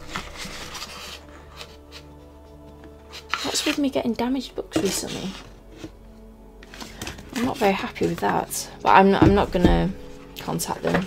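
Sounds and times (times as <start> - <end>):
paper rustling: 0.0 - 2.2, 3.1 - 3.9
faint background music: 0.0 - 11.0.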